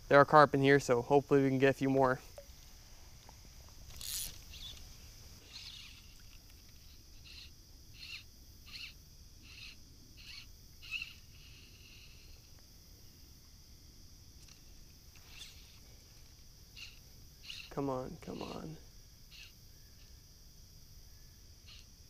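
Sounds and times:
bird calling: 16.8s - 20.1s.

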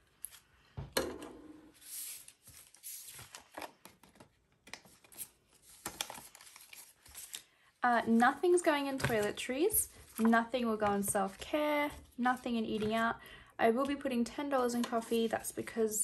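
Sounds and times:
plastic envelopes crinkling: 2.0s - 7.6s, 8.4s - 13.1s.

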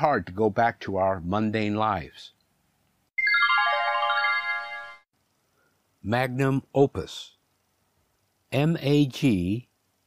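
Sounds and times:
falling chime notes: 3.2s - 5.1s.

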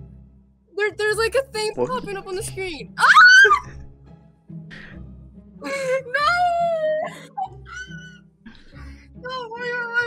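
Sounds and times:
girl squealing: 3.0s - 3.7s, 7.4s - 8.2s.

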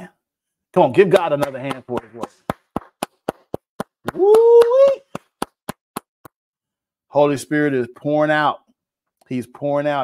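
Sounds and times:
hand claps: 0.8s - 6.4s.

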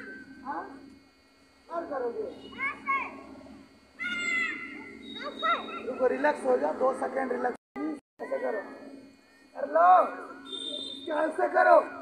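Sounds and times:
child's high-pitched call: 2.5s - 3.1s, 4.0s - 5.9s.

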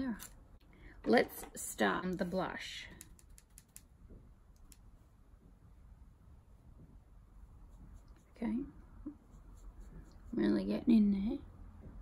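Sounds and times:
makeup brush clicking in palette: 2.9s - 3.9s.

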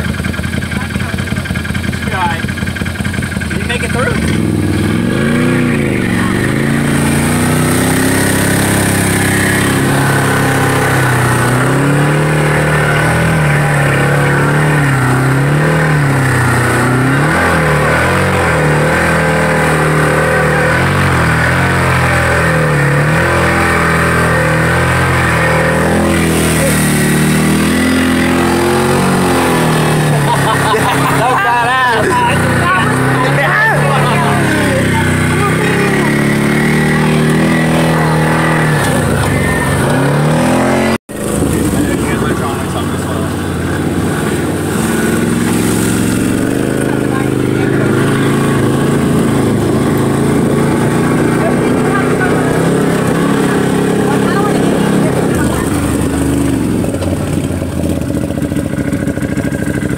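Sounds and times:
engine revving while driving: 0.0s - 59.9s.

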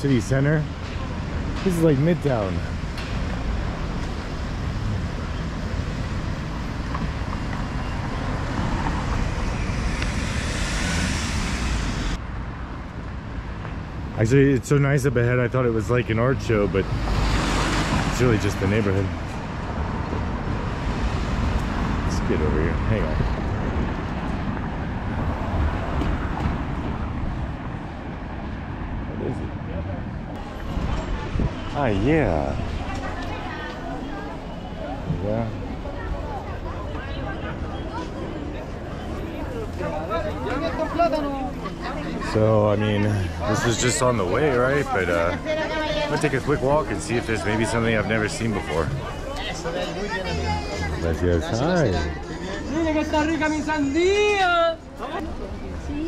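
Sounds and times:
cars driving past: 0.0s - 56.0s
low street rumble: 0.0s - 56.0s
wind rumble on microphone: 22.8s - 31.8s.

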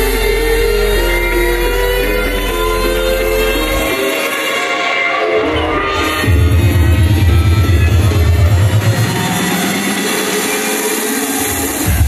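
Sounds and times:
heavy bass: 0.0s - 4.6s, 5.3s - 12.0s
electronic dance music: 0.0s - 12.0s
sustained synth notes: 0.0s - 12.0s.

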